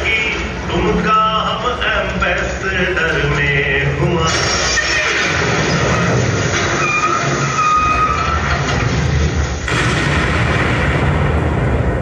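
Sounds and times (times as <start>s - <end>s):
bus road rumble over speakers: 0.0s - 9.8s.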